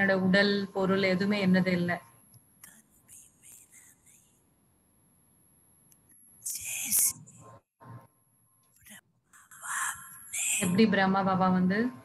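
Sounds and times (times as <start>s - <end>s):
faint whispery hisses: 2.6s - 4.3s, 6.4s - 7.3s, 8.8s - 10.8s.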